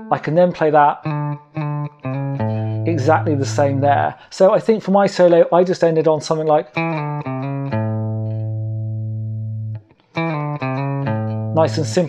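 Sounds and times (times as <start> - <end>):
electric guitar low note ringing: 1.0 - 4.1, 6.8 - 12.0.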